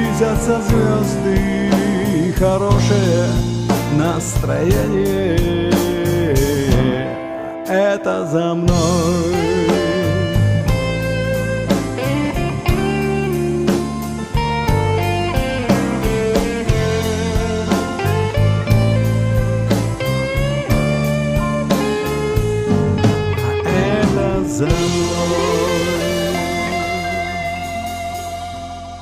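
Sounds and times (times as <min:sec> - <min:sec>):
drum kit beat: 0:00.0 - 0:07.2, 0:08.7 - 0:29.0
bass guitar: 0:00.0 - 0:29.0
lead guitar with bending notes: 0:00.0 - 0:29.0.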